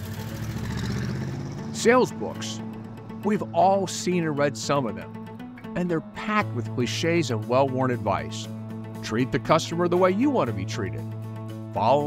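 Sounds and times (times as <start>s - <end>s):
soft background music: 0.0s - 12.0s
man speaking: 1.8s - 2.6s, 3.2s - 5.2s, 5.8s - 11.0s, 11.8s - 12.0s.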